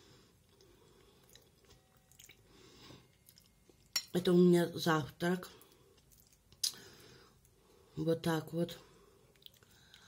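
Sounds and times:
faint chewing: 0:00.2 - 0:04.0, 0:05.6 - 0:07.8, 0:09.2 - 0:10.0.

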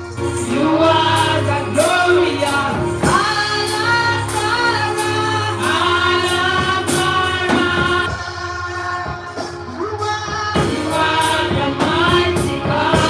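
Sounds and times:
instrumental backing: 0:00.0 - 0:13.0
steady percussion beat: 0:00.0 - 0:13.0
voices singing along: 0:00.3 - 0:13.0
woman singing into microphone: 0:00.4 - 0:13.0.

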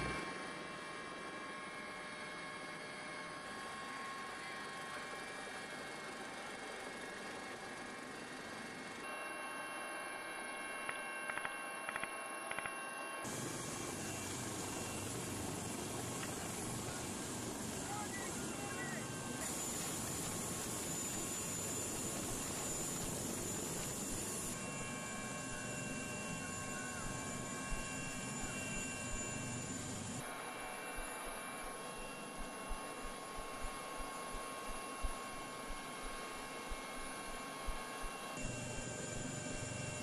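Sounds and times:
helicopter engine and rotor: 0:00.0 - 0:40.0
whine tones: 0:09.0 - 0:40.0.

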